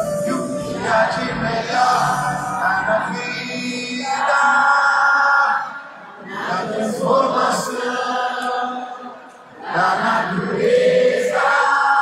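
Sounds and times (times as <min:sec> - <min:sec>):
person singing: 0:00.0 - 0:05.4.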